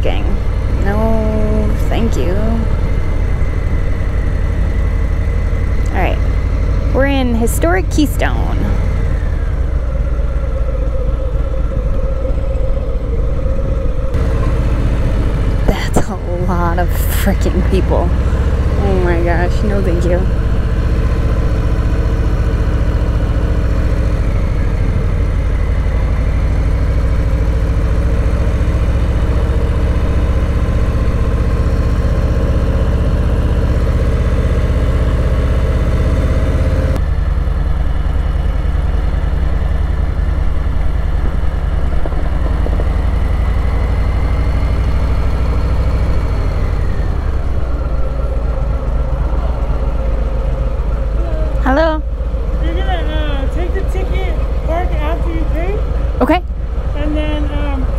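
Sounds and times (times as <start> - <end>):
motorcycle engine running: 0.0 - 57.9.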